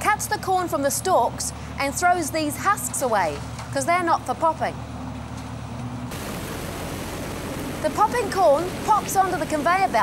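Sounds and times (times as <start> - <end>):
engine hum: 0.0 - 10.0
rushing noise of picking machinery: 4.8 - 10.0.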